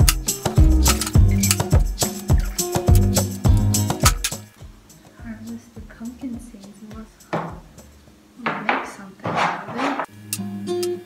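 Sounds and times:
short scraping: 0:08.8 - 0:10.1.

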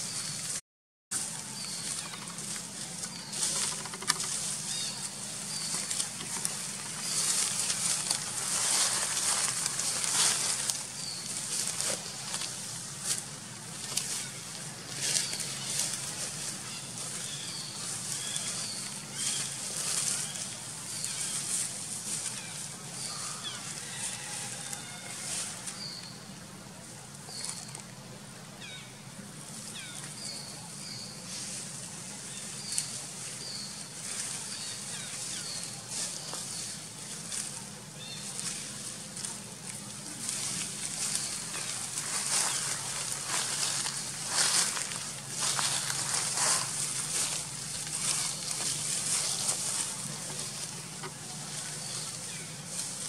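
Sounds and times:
outdoor background hiss: 0:00.0 - 0:53.0
steady high hiss: 0:28.1 - 0:53.0.

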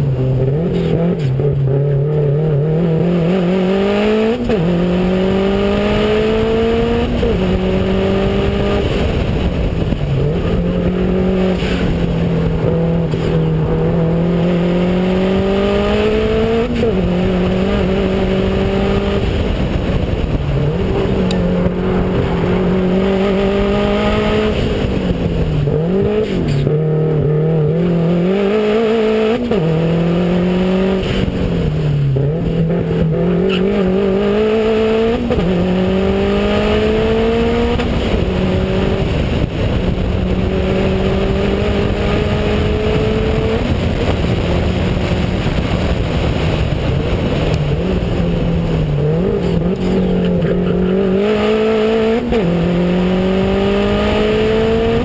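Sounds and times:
car engine accelerating hard: 0:00.0 - 0:55.0
wind rush on camera: 0:00.0 - 0:55.0.

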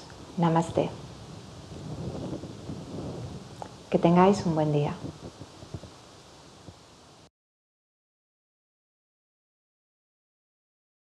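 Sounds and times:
clothing rubbing on microphone: 0:00.8 - 0:03.9, 0:04.9 - 0:06.8.

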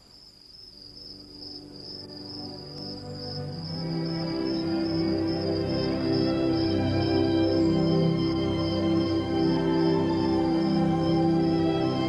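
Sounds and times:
insects chirring: 0:00.0 - 0:12.0
gentle music: 0:00.4 - 0:12.0.

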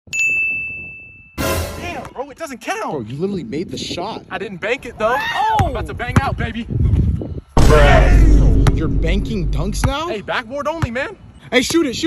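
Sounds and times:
bell-like ding: 0:00.1 - 0:01.6.

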